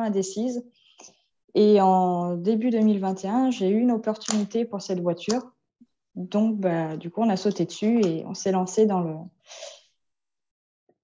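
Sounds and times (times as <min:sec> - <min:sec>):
woman speaking: 0:00.0 - 0:05.6, 0:06.2 - 0:09.4.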